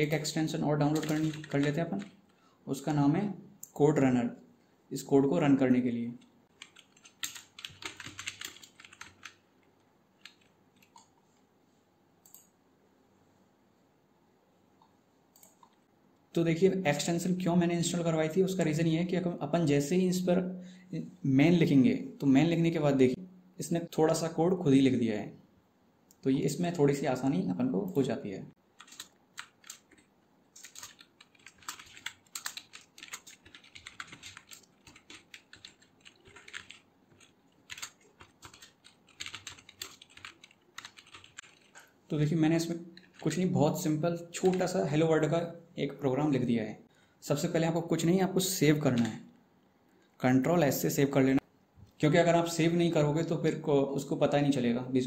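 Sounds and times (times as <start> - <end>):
keyboard typing: 0.0 - 2.2, 6.5 - 9.4, 10.2 - 11.1, 28.8 - 41.9, 44.4 - 44.8.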